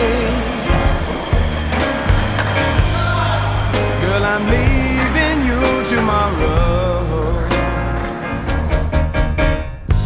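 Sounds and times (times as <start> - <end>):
background music: 0.0 - 10.0
skateboard wheels rolling on concrete: 0.0 - 10.0
skateboard clacks: 0.2 - 3.1.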